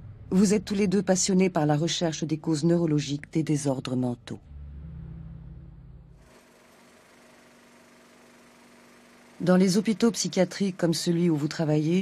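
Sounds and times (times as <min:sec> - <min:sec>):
low drone: 0:00.0 - 0:01.1, 0:04.3 - 0:06.2.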